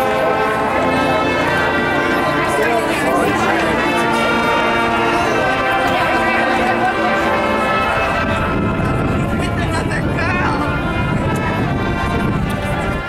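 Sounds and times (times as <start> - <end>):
marching band playing: 0.0 - 13.0
spectators' voices: 0.0 - 13.0.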